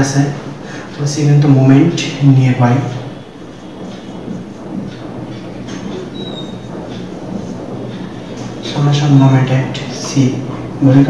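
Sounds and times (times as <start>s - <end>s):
marker pen writing on whiteboard: 2.9s - 11.0s
marker squeak: 5.7s - 6.7s.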